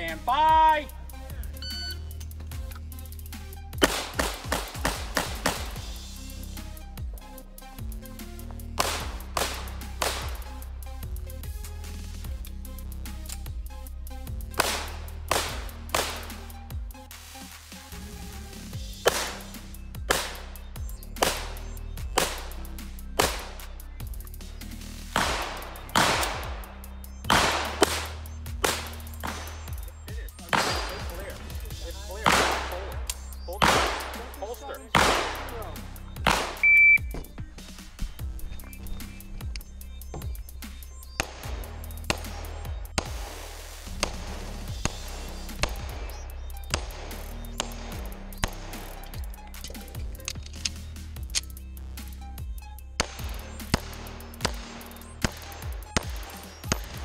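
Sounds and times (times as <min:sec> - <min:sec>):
pistol shots: 0:03.8 - 0:05.8, 0:08.8 - 0:10.6, 0:14.6 - 0:16.4, 0:19.0 - 0:19.5, 0:20.1 - 0:20.5, 0:21.2 - 0:22.6, 0:23.2 - 0:23.6, 0:25.2 - 0:31.4, 0:32.1 - 0:36.8, 0:41.2 - 0:43.2, 0:46.7 - 0:49.0, 0:53.0 - 0:57.0.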